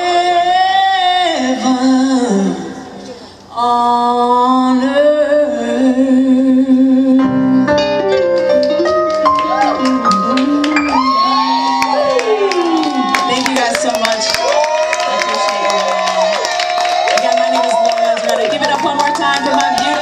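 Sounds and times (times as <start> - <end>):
keyboard: 5.3 - 14.2
audience cheering and clapping: 8.6 - 20.0.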